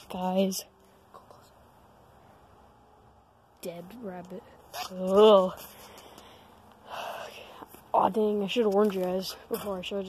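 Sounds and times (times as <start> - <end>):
person whispering: 1.0 - 1.7.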